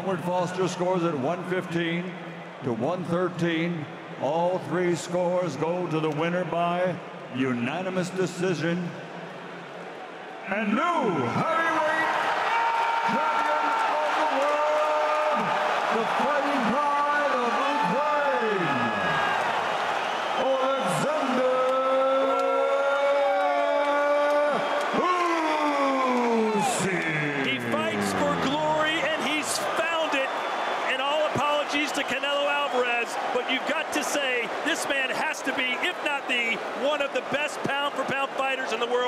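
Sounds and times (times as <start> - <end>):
announcer's amplified voice echoing: 26.2 - 30.3, 30.9 - 39.0.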